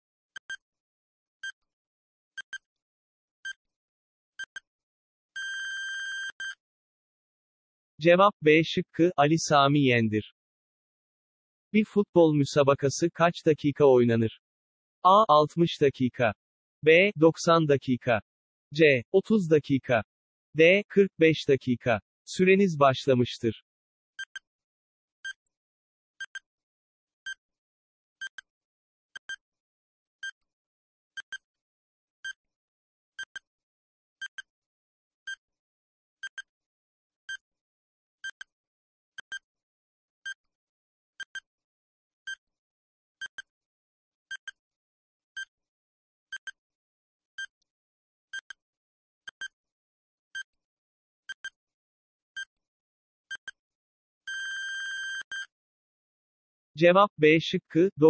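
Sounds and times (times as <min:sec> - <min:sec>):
electronic timer ticks: 0:28.2 - 0:28.4, 0:29.2 - 0:29.4, 0:31.2 - 0:31.4, 0:34.2 - 0:34.5, 0:36.2 - 0:36.5, 0:41.2 - 0:41.4, 0:43.2 - 0:43.4, 0:49.3 - 0:49.5, 0:51.3 - 0:51.5
long electronic beep: 0:54.3 - 0:55.5.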